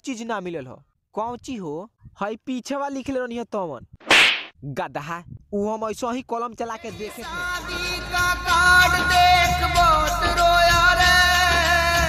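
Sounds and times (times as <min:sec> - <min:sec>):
loud slap to the face: 0:04.0 - 0:04.5.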